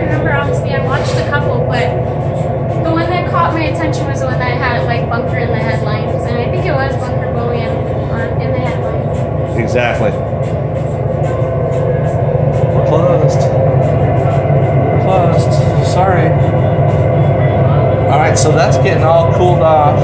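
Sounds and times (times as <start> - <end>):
low mechanical hum: 0.0 - 20.0.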